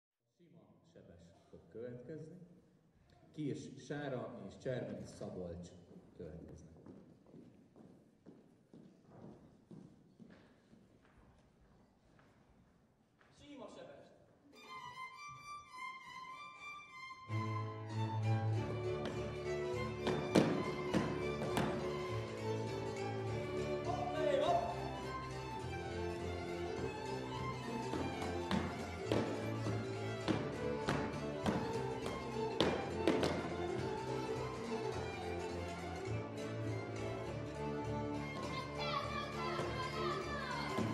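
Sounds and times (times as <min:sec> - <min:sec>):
boot heel footsteps on stage: 0:05.9 - 0:13.4, 0:18.8 - 0:22.4, 0:26.7 - 0:34.5
folk dance music with fiddle: 0:14.5 - 0:40.9.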